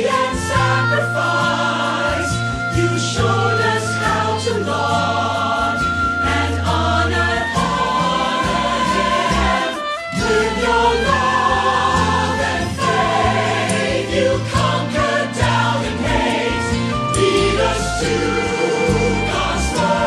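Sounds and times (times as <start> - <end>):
choir singing religious song: 0.0 - 20.0.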